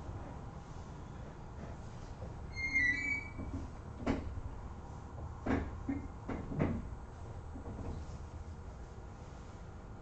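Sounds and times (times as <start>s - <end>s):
knocks and clunks: 5.4s - 6.9s.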